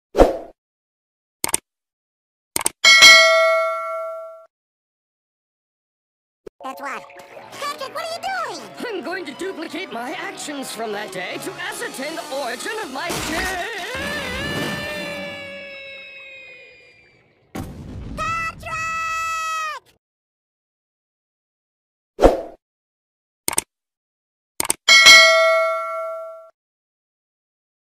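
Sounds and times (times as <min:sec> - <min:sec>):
bell ding: 0:02.9 - 0:04.5, 0:24.9 - 0:26.5.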